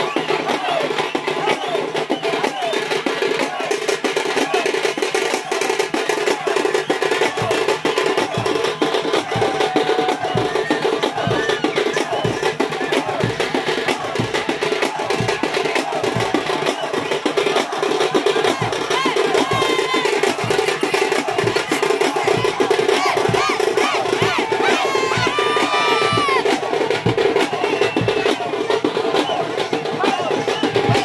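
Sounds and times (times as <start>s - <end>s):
crowd shouts and whoops: 0.0s - 31.0s
fast dense drumming: 0.0s - 31.0s.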